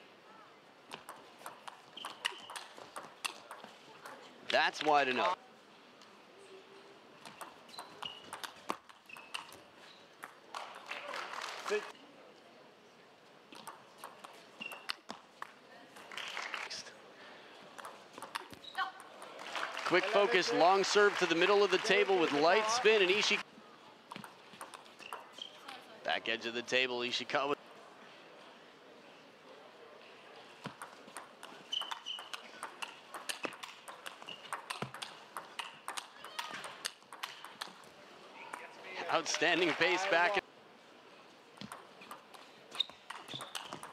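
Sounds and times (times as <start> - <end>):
table tennis ball clicks: 0.9 - 4.2, 7.2 - 9.6, 17.8 - 19.4, 24.1 - 25.3, 30.6 - 37.9, 41.6 - 43.9
brief squeaks: 1.9 - 2.8, 7.3 - 10.1, 14.6 - 15.0, 25.0 - 25.8, 31.7 - 32.5, 42.7 - 43.9.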